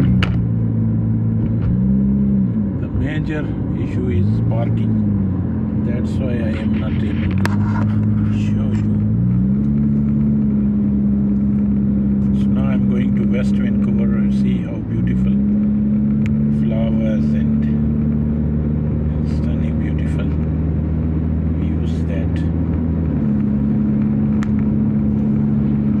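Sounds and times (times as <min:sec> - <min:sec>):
car engine and road drone: 0:00.0 - 0:26.0.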